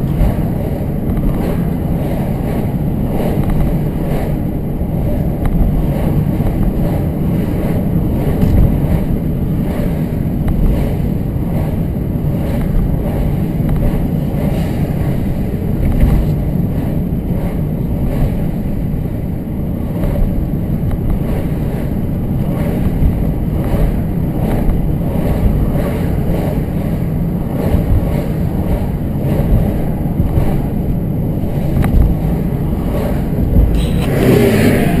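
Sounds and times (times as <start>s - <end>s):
car driving interior rumble: 0.0s - 35.0s.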